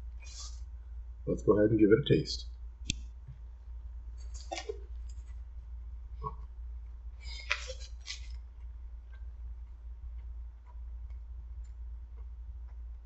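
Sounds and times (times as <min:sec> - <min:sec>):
steady low hum: 0:00.0 - 0:13.0
crackly rustle: 0:04.2 - 0:05.6, 0:07.2 - 0:12.3.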